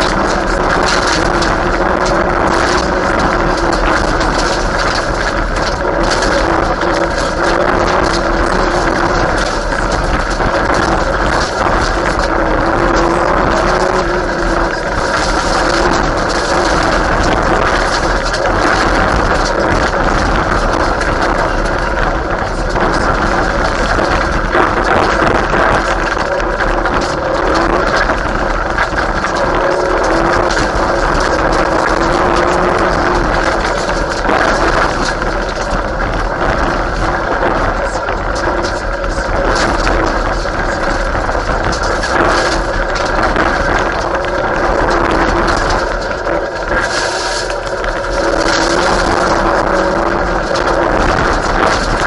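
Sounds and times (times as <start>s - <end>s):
rally car engine revving: 0.0s - 52.0s
stones rattling against car: 0.0s - 52.0s
tyres on gravel: 0.0s - 52.0s.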